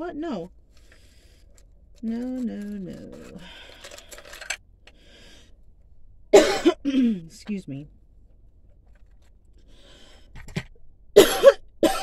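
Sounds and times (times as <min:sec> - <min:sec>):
woman coughing: 0:06.3 - 0:07.3, 0:11.2 - 0:12.0.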